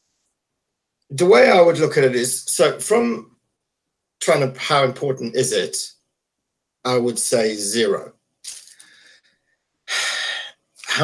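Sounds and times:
person speaking: 0:01.1 - 0:03.2, 0:04.2 - 0:05.9, 0:06.9 - 0:09.0, 0:09.9 - 0:11.0
loud breath hiss: 0:09.9 - 0:10.5.

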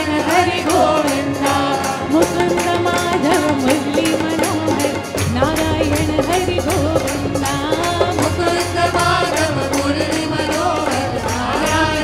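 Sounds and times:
group devotional singing: 0:00.0 - 0:12.0
musical accompaniment: 0:00.0 - 0:12.0
steady percussion beat: 0:00.0 - 0:12.0.

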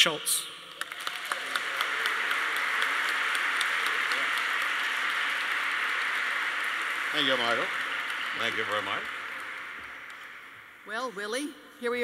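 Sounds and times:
audience applauding: 0:00.7 - 0:10.8.

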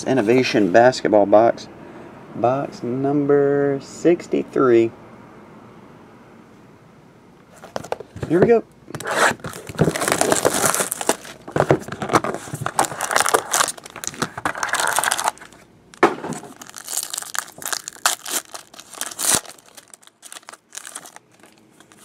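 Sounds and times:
cards rustling: 0:07.6 - 0:22.0
plastic wrapper crinkling and tearing: 0:09.0 - 0:22.0.

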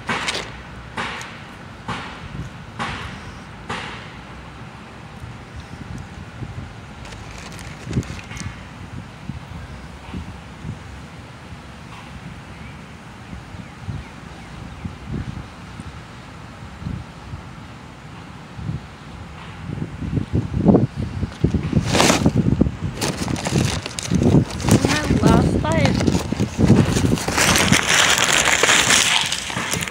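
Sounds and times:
wind rumbling on microphone: 0:02.2 - 0:03.3, 0:05.1 - 0:29.9.

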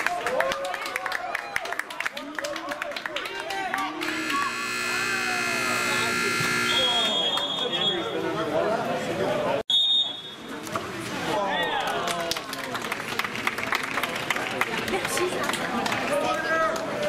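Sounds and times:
spectators' voices: 0:02.2 - 0:09.6, 0:10.3 - 0:17.0
game buzzer steady tone: 0:04.0 - 0:07.3.

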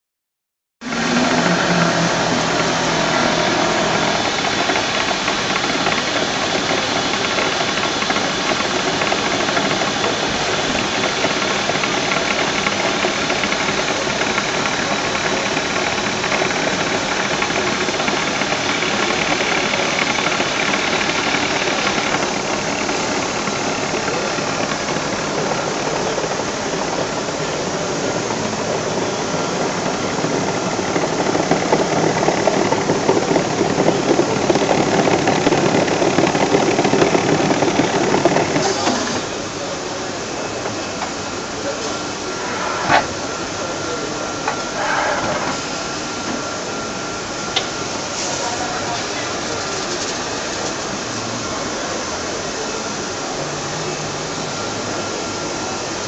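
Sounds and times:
paper-handling machines running: 0:00.8 - 0:56.0.

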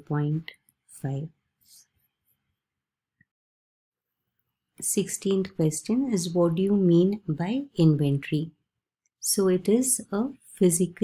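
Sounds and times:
woman speaking: 0:00.0 - 0:01.4, 0:04.8 - 0:08.6, 0:09.2 - 0:11.0.

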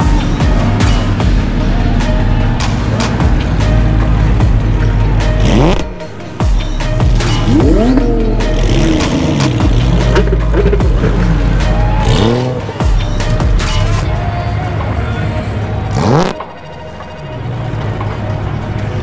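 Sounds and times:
car engines revving: 0:00.0 - 0:19.0
loud bass-heavy music: 0:00.0 - 0:19.0.

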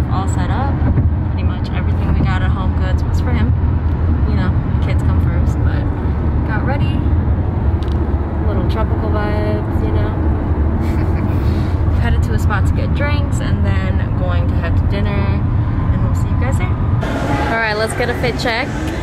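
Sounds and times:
car cabin rumble: 0:00.1 - 0:19.0.

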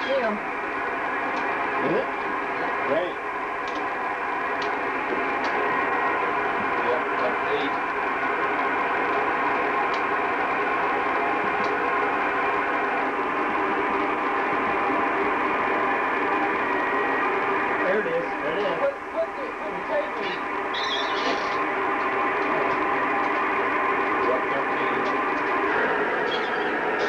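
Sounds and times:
radio static hiss: 0:00.0 - 0:27.0.

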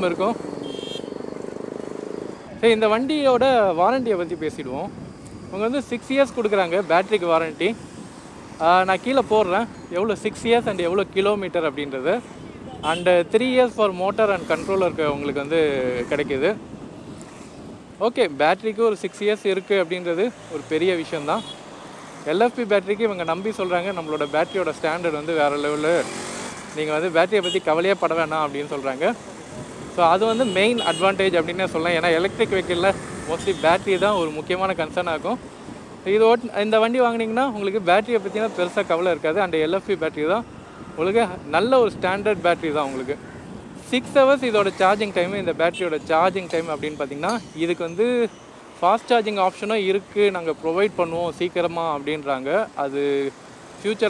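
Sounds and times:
street traffic: 0:00.0 - 0:54.0
wind and road noise: 0:00.0 - 0:54.0
man speaking: 0:12.8 - 0:16.6, 0:22.3 - 0:26.1, 0:30.0 - 0:35.4.

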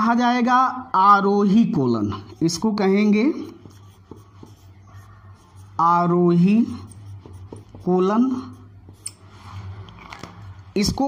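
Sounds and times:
marker pen on whiteboard: 0:01.6 - 0:11.0.

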